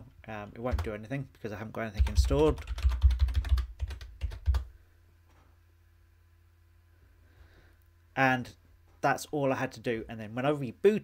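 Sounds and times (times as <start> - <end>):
keyboard typing: 0.6 - 1.0, 2.0 - 4.7.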